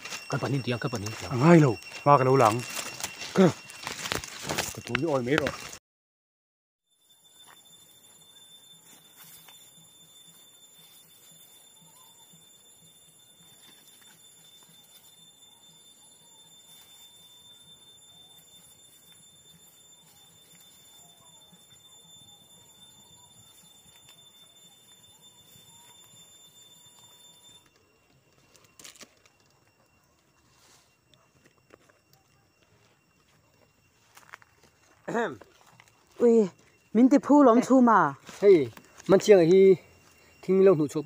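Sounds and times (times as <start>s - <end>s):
high-pitched whine: 0.0s - 5.8s, 6.9s - 41.0s
faint chirps: 7.0s - 41.0s.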